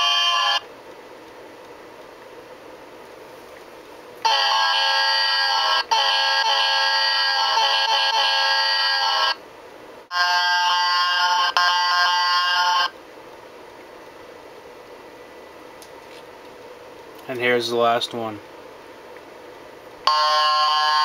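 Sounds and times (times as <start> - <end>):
locomotive air horn blasts: 20.1 - 21.0.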